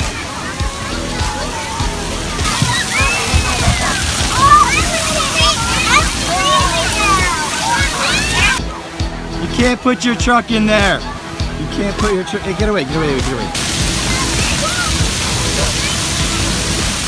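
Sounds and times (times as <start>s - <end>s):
children shouting and squealing: 0.0s - 10.2s, 10.8s - 17.0s
splashing water: 0.0s - 17.0s.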